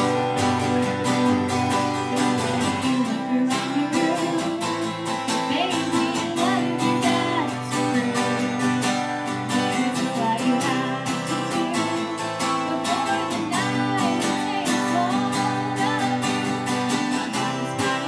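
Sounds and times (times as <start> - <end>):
acoustic guitar strumming: 0.0 - 18.0
woman singing: 0.0 - 18.0.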